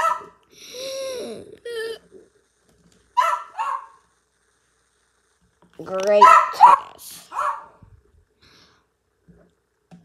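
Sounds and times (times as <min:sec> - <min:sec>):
dog barking: 0:00.0 - 0:00.4, 0:03.2 - 0:04.0, 0:06.1 - 0:07.8.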